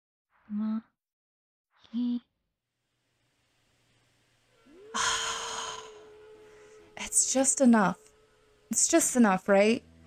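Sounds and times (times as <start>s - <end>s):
steady tone: 3.7s - 10.0s
woman sighing: 4.7s - 7.0s.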